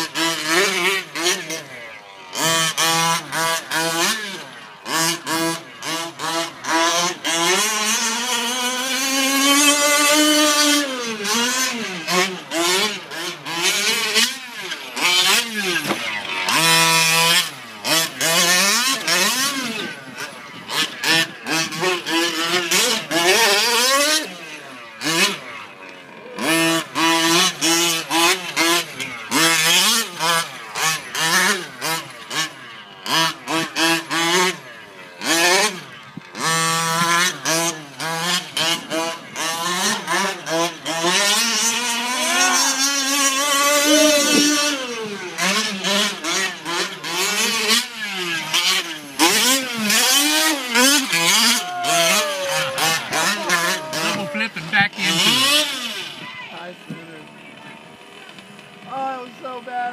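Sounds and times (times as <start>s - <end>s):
small two-stroke engine revving: 0.0s - 59.9s.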